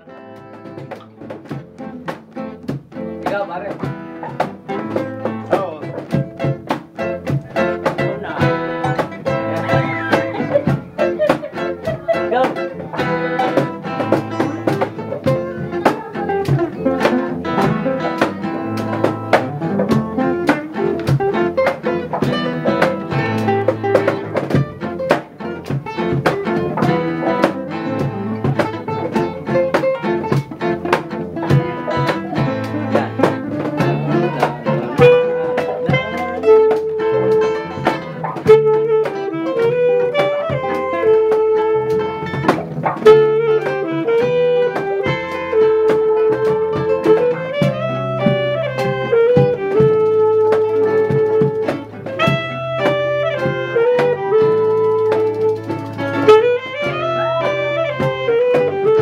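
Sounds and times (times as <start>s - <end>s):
acoustic guitars strumming: 0.0s - 59.0s.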